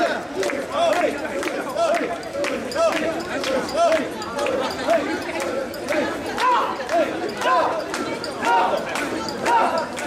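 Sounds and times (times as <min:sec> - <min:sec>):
men chanting in rhythm: 0:00.0 - 0:10.0.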